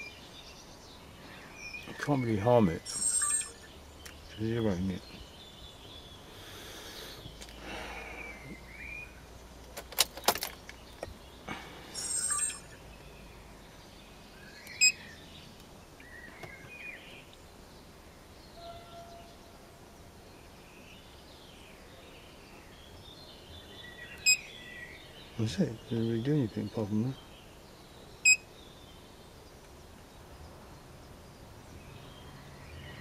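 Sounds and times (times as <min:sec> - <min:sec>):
birds chirping: 0:00.0 - 0:33.0.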